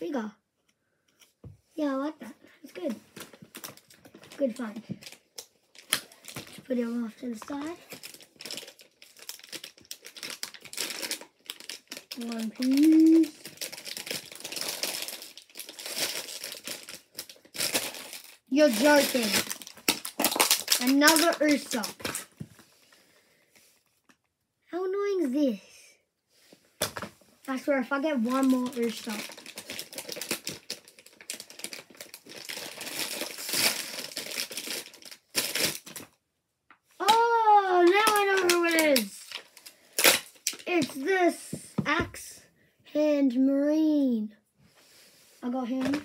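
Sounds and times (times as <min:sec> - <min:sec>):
plastic packet crinkling: 0:02.8 - 0:22.4, 0:28.2 - 0:36.2, 0:37.0 - 0:41.0.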